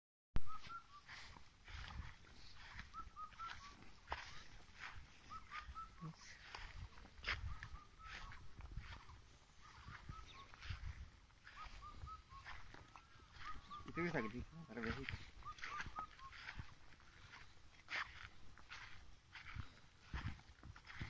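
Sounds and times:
short high animal calls: 9.0s - 16.8s.

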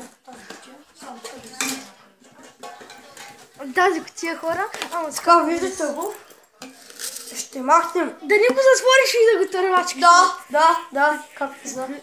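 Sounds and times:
metal tin clattering: 1.2s - 1.9s, 4.7s - 7.7s.

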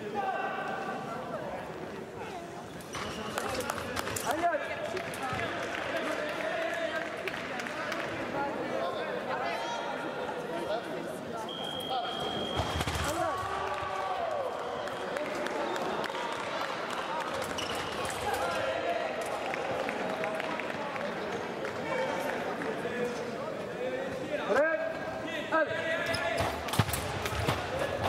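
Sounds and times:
voices echoing in a hall: 0.0s - 28.0s.

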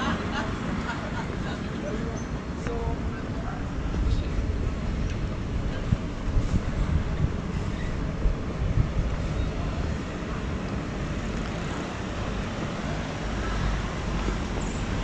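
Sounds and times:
low street rumble: 0.0s - 15.0s.

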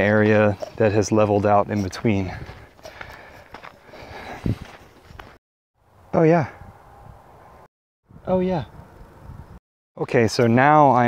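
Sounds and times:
footsteps walking: 0.2s - 5.4s.

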